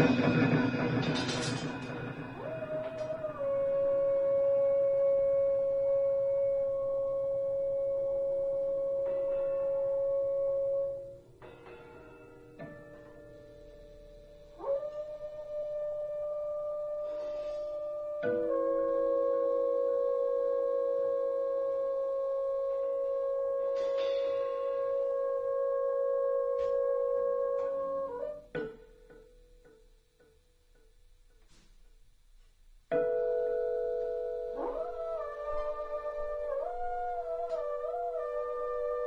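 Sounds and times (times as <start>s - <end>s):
steady high pure tone: 0.0s - 17.6s.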